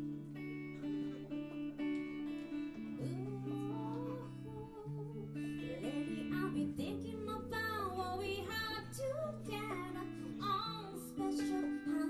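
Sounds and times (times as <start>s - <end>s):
electric guitar: 0.0s - 12.0s
woman singing into a microphone: 2.9s - 12.0s.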